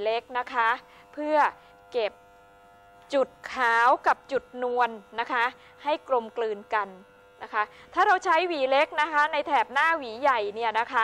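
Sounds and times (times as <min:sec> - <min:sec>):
woman talking: 0:00.0 - 0:02.2, 0:03.1 - 0:11.0
electric hair clipper buzzing: 0:00.0 - 0:11.0.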